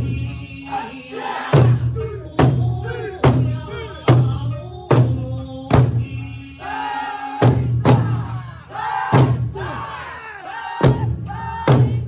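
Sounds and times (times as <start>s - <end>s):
people singing: 0.0s - 12.0s.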